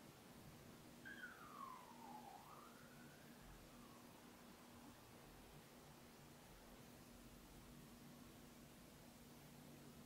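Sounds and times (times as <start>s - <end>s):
faint siren wail: 1.0s - 4.6s.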